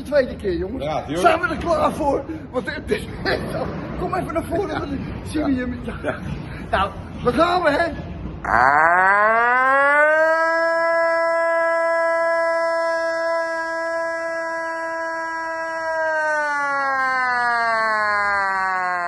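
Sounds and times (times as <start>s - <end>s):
man imitating air-raid siren: 8.4s - 19.0s.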